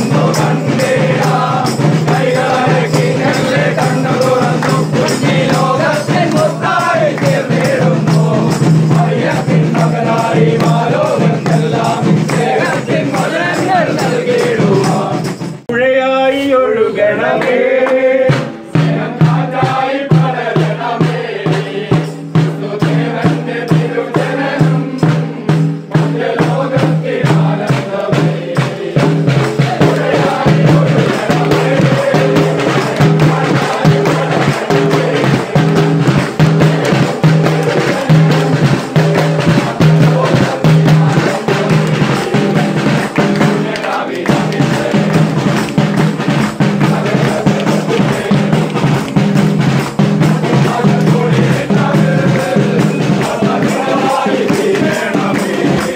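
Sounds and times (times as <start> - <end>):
snare drum beat: 0.0 - 15.7, 17.4 - 55.9
carolers singing: 0.0 - 55.9
hand clapping: 3.0 - 8.2, 29.4 - 51.2, 52.3 - 55.9.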